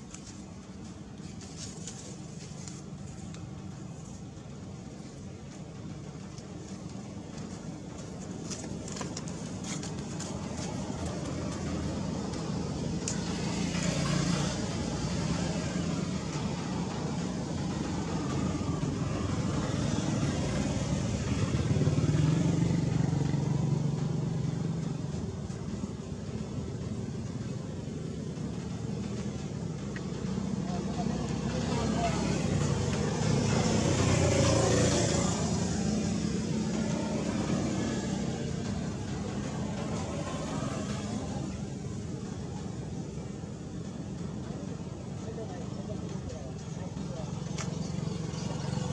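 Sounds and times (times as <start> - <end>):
road traffic rumble: 0.0 - 48.9.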